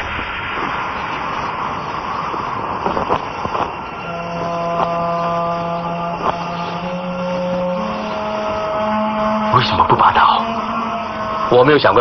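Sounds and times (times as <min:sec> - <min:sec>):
low sustained drone chord: 0:00.0 - 0:12.0
rushing wind-like noise: 0:00.0 - 0:12.0.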